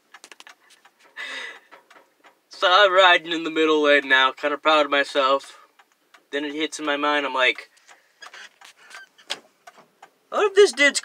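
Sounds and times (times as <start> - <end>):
faint clicks: 0.0 - 2.4, 5.4 - 7.0.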